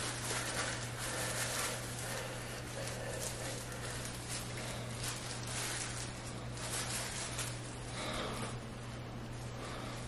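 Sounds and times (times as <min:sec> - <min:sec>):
gloved hands rustling in hair: 0:00.0 - 0:08.6
low electrical hum: 0:00.0 - 0:10.0.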